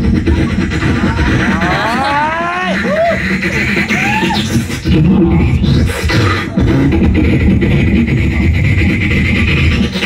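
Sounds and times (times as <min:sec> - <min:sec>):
beatboxing bass and kick: 0:00.0 - 0:10.0.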